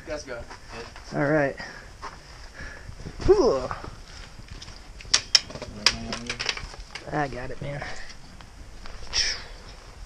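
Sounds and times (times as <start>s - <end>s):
trekking poles knocking on rock: 5.1s - 7.1s.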